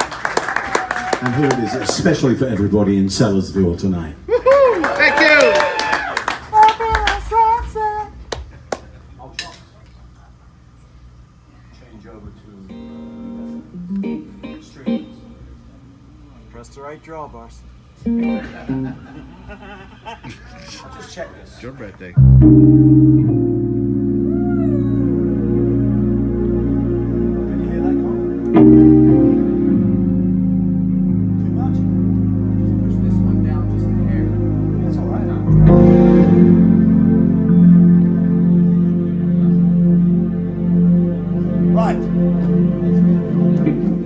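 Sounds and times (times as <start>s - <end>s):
short instrument notes: 12.7s - 15.8s, 18.0s - 19.2s, 22.2s - 44.0s
organ playing held chords: 12.7s - 15.9s, 18.0s - 19.8s, 22.2s - 44.0s.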